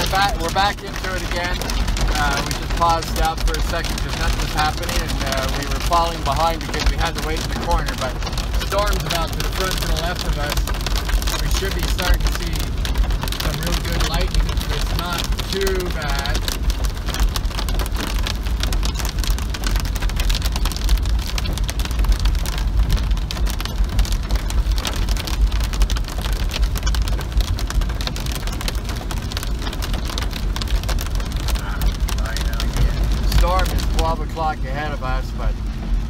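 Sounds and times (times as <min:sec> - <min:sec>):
man speaking: 0:00.0 - 0:10.6, 0:11.4 - 0:12.7, 0:13.4 - 0:16.4, 0:31.6 - 0:35.6
car driving on wet road: 0:00.0 - 0:36.0
heavy rain on car: 0:00.0 - 0:36.0.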